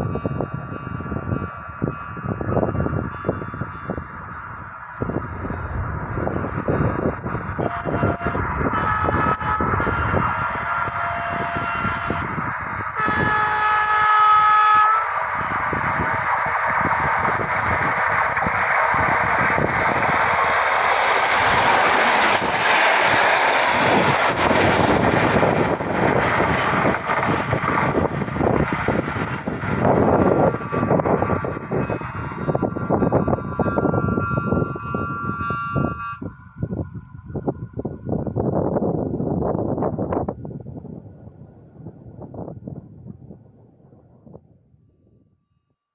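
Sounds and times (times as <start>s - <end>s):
train passing at speed: 0.0s - 44.8s
train horn blast: 6.5s - 16.2s, 30.6s - 36.5s.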